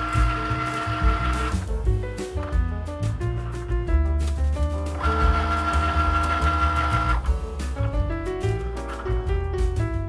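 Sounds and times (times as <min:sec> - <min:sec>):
cutting machine motor whine: 0:00.0 - 0:01.6, 0:05.0 - 0:07.3
background music: 0:00.0 - 0:10.0.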